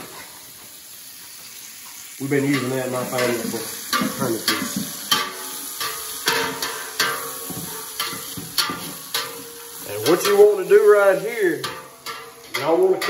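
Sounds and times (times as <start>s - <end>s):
vegetables sizzling in a hot pan: 0.0s - 13.0s
utensil scraping the pan: 2.0s - 13.0s.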